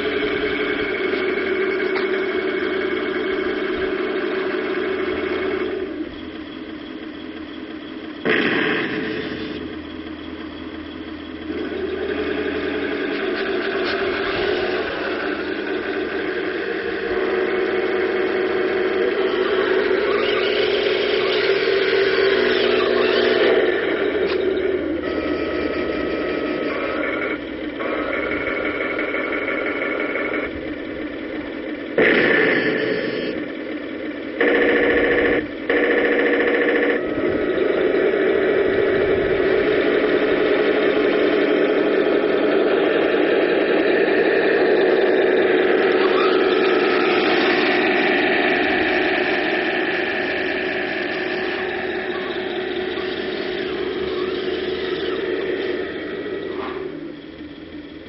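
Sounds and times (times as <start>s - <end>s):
model tank mechanical drone: 0.0s - 58.0s.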